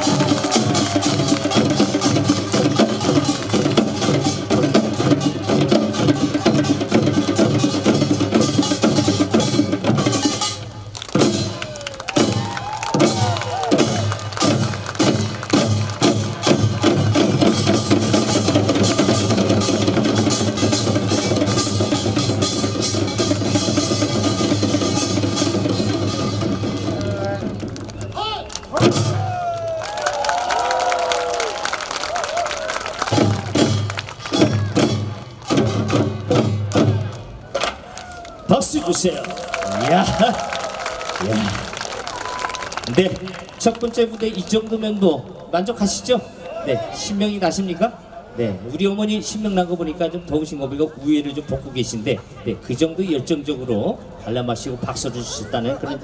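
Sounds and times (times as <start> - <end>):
barrel drums beaten fast: 0.0 - 10.5, 11.1 - 27.6, 33.1 - 37.1.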